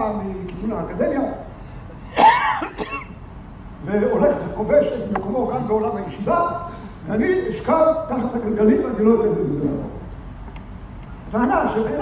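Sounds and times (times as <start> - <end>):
man clearing his throat: 2.1 - 3.2.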